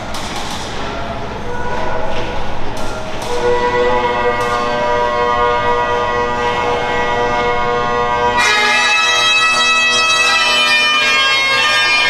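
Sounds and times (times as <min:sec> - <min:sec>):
bagpipes playing: 0:03.4 - 0:12.0.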